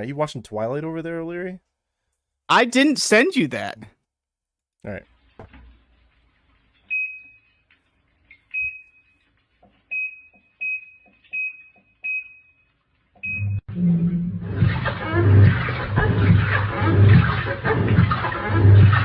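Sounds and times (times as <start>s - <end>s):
washing machine beeps: 6.8s - 7.6s, 8.3s - 9.2s, 9.8s - 13.7s
washing machine low hum: 13.2s - 19.0s
washing machine rushing water: 13.9s - 19.0s.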